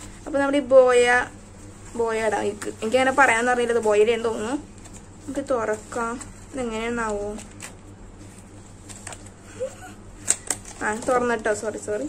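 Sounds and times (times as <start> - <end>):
low steady hum: 0.0 - 12.0
girl's voice: 10.8 - 12.0.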